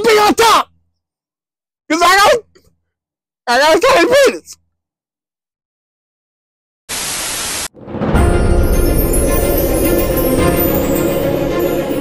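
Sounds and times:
burst of hiss-like static: 6.9 - 7.7.

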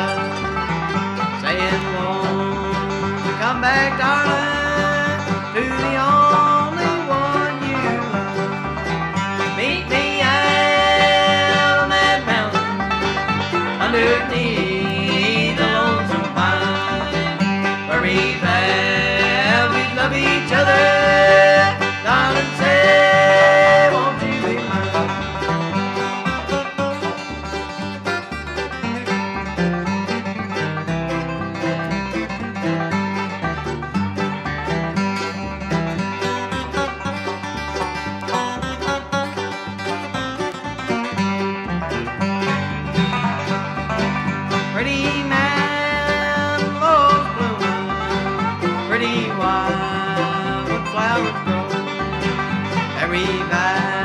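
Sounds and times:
acoustic guitar picking: 0.0 - 54.0
banjo picking: 0.0 - 54.0
bass line: 0.0 - 54.0
sliding lead line: 0.0 - 54.0.

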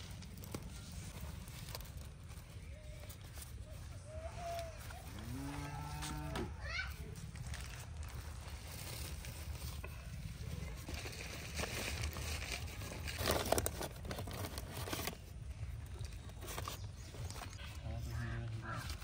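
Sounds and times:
newspaper crackling: 0.0 - 19.0
cow mooing: 5.1 - 6.6.

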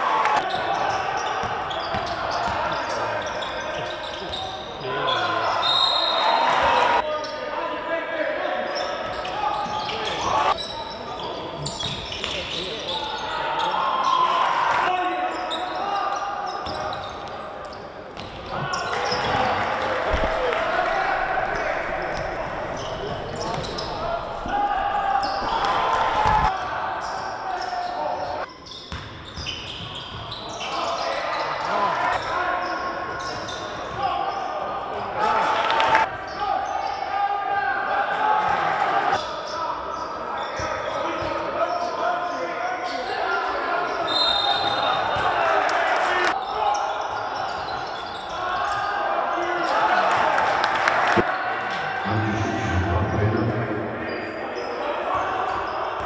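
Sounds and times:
players calling out: 8.4 - 28.5.

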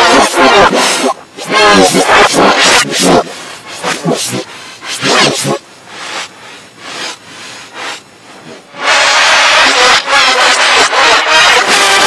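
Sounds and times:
harsh sustained shriek: 8.8 - 12.0.

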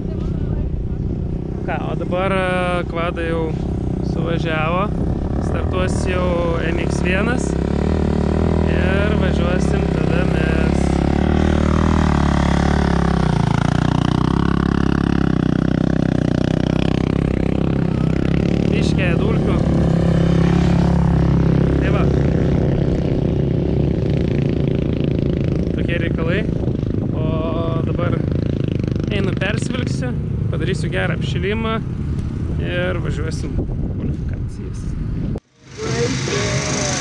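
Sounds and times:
motocross bike engines revving: 1.1 - 32.8, 35.4 - 37.0.

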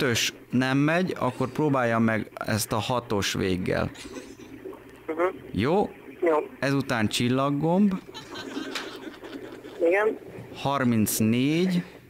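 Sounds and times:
telephone line murmur: 3.1 - 12.0
man speaking: 5.5 - 5.9, 6.6 - 8.0, 10.6 - 12.0.

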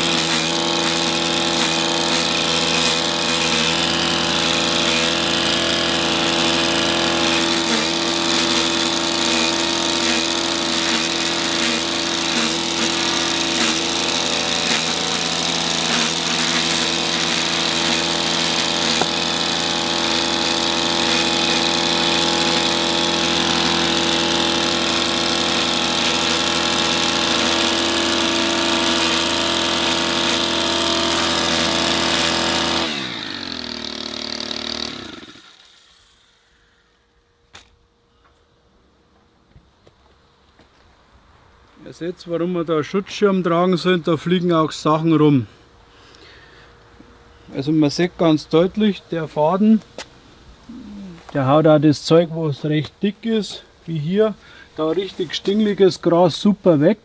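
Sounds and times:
trimmer line whirring cutting grass: 0.0 - 36.9
string trimmer engine running: 0.0 - 37.7, 53.4 - 57.0.

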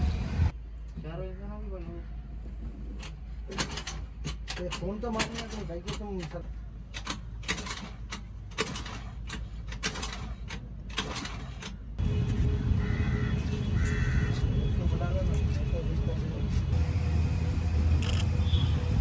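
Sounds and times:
clicks and knocks of hands working: 3.0 - 11.8.

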